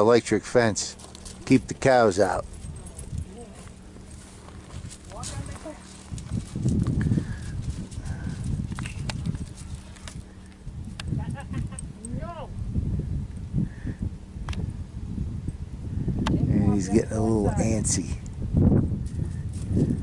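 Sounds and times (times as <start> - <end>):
wind buffeting microphone: 1.2 - 20.0.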